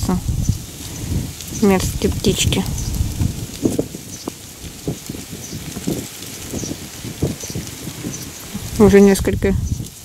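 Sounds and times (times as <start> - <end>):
thrushes calling: 0.0 - 10.0
rustling and bumping on microphone: 1.8 - 8.8.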